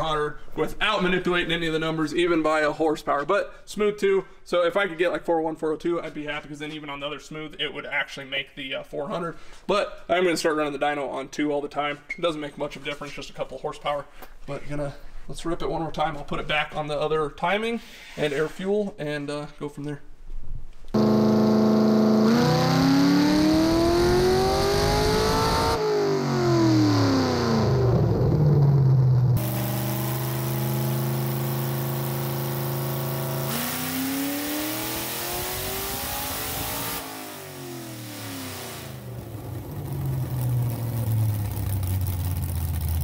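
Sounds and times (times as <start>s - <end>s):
engine revving on dyno: 21.0s - 43.0s
engine idling: 39.1s - 43.0s.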